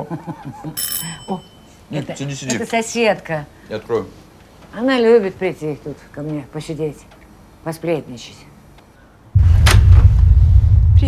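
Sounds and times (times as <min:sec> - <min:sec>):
doorbell ringing: 0:00.8 - 0:01.8.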